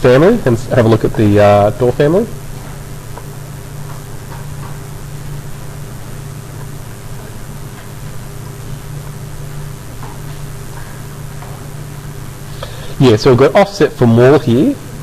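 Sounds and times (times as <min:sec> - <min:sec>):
background hiss: 0:00.0 - 0:15.0
low electrical hum: 0:00.0 - 0:15.0.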